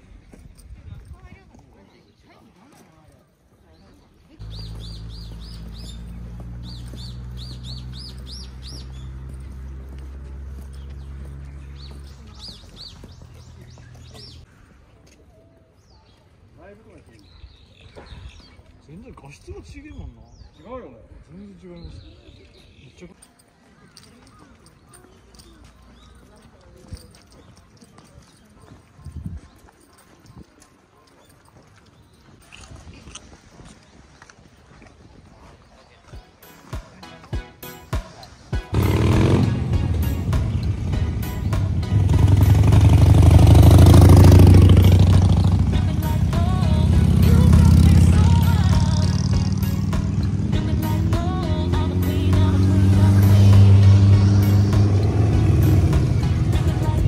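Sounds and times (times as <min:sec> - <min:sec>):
footsteps on a path: 0:00.0 - 0:20.6, 0:22.0 - 0:57.0
small songbird chirping: 0:03.8 - 0:14.6.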